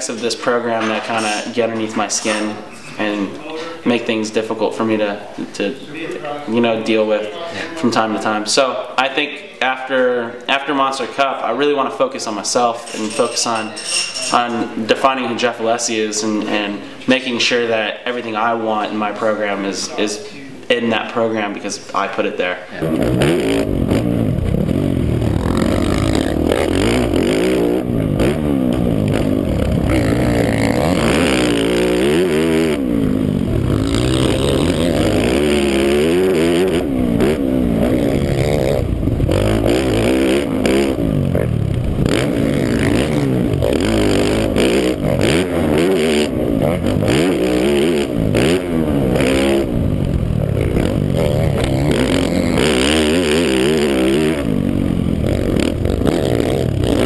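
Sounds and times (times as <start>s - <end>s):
motocross bike engine revving: 0.0s - 5.9s, 22.6s - 57.0s.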